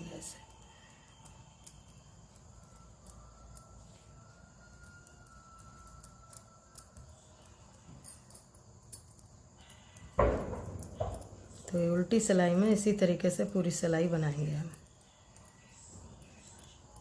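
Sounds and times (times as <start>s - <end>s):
knitting needles clicking: 0.0s - 4.0s, 4.6s - 10.2s, 11.5s - 17.0s
faint high steady tone: 0.0s - 10.2s, 10.8s - 17.0s.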